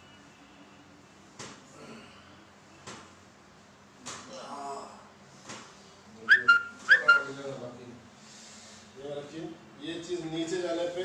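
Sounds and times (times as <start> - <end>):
two-note whistle: 6.3 - 7.3.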